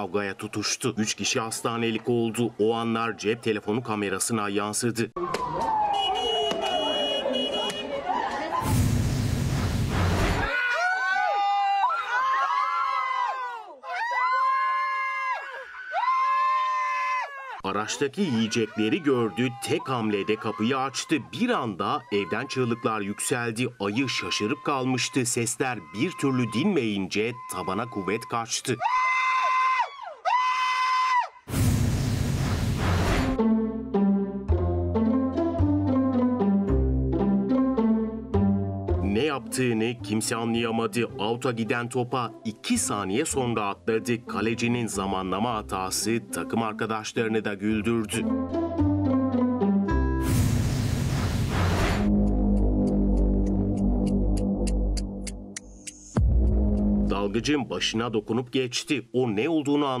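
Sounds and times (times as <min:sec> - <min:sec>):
person screaming: 0:28.8 - 0:31.4.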